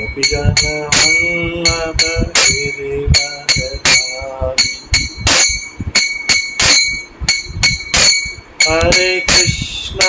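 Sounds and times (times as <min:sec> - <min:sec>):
hand cymbals clinking: 0:00.0 - 0:10.0
soft low beats: 0:00.0 - 0:10.0.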